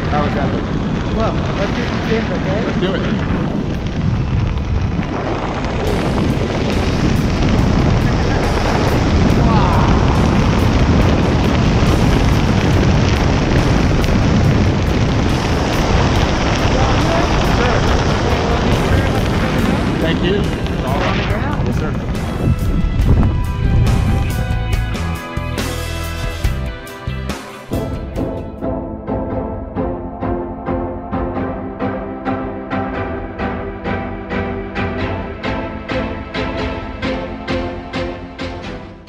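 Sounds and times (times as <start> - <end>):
wind buffeting microphone: 0.0 - 25.0
music: 5.8 - 39.0.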